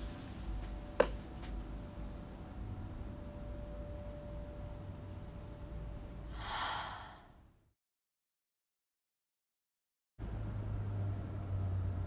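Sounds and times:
low steady rumble: 0.0 - 7.2
person gasping: 6.3 - 7.4.

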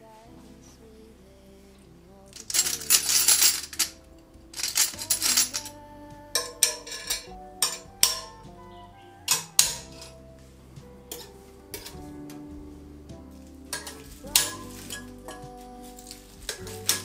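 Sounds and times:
soft background music: 0.0 - 17.0
metal hooks clinking on rail: 2.4 - 4.0, 4.6 - 5.7, 6.4 - 8.4, 9.3 - 10.2, 13.7 - 15.5.

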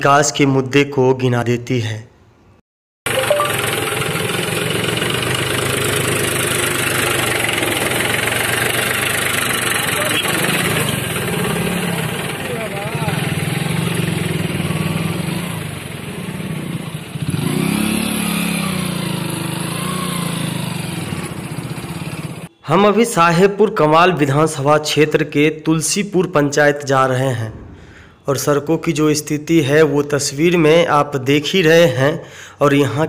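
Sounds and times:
motorcycle engine running: 3.1 - 22.5
tractor diesel engine running: 3.1 - 22.5.

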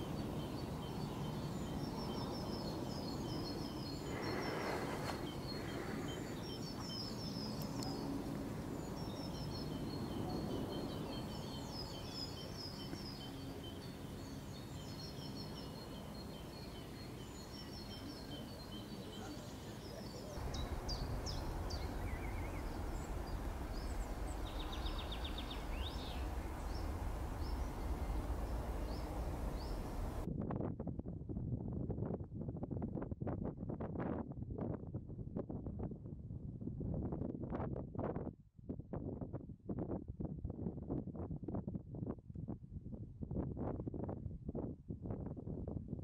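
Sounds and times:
small birds chirping: 0.0 - 30.3
wind buffeting microphone: 0.0 - 46.0
low rumble: 20.2 - 31.4
steady hiss: 20.4 - 30.3.

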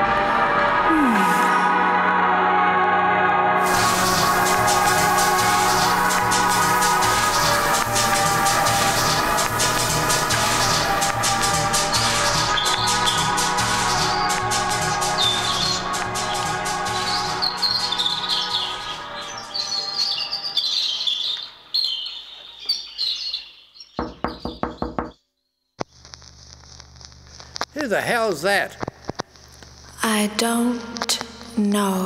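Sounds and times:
music: 0.0 - 21.9
birds chirping: 3.6 - 25.2
knocks on a door: 24.0 - 25.2.

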